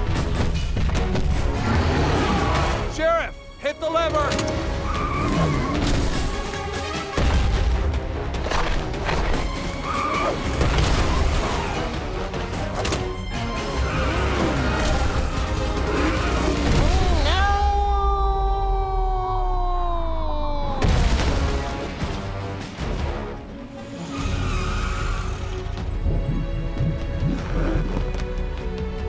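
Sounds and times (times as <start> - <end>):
booms and crashes: 20.8 - 22.4.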